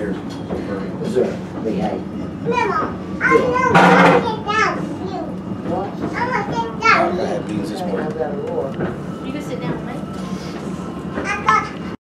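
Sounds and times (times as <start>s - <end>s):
children chattering: 2.2s - 8.6s, 11.0s - 12.0s.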